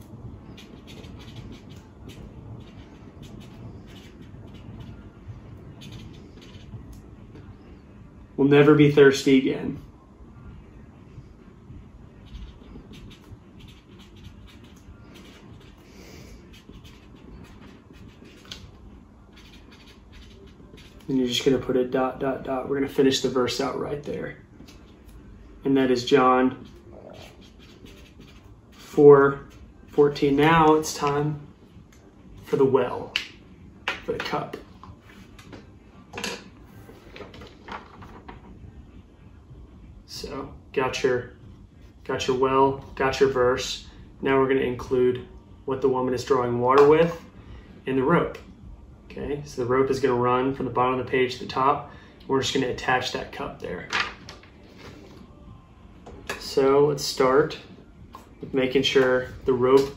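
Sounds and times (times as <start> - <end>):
low room noise: 0.0 - 59.9
marker scratching on paper: 0.4 - 5.1, 5.7 - 6.9, 12.2 - 21.6, 26.5 - 30.8.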